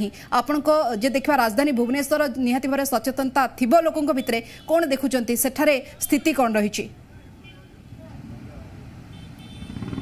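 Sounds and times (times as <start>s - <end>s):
motor vehicle engine noise: 7.9s - 10.0s.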